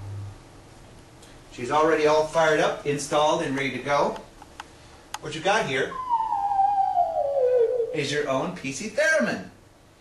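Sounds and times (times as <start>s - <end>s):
sine tone gliding down: 5.8s - 8.3s.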